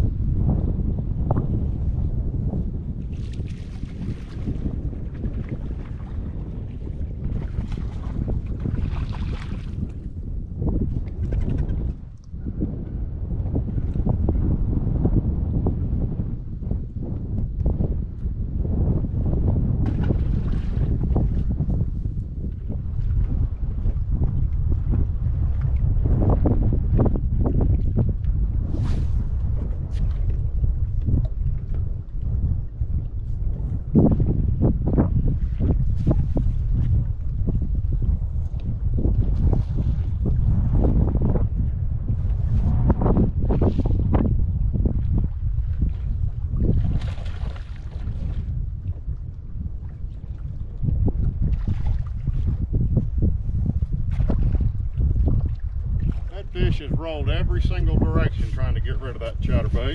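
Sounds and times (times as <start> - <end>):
wind buffeting the microphone: 0.0 - 59.9.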